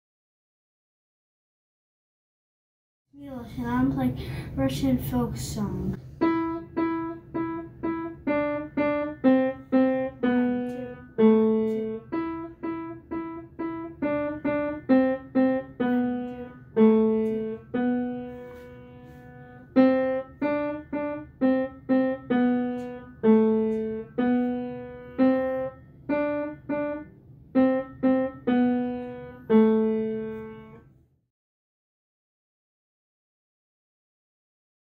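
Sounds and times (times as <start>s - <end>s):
piano melody: 6.0s - 31.0s.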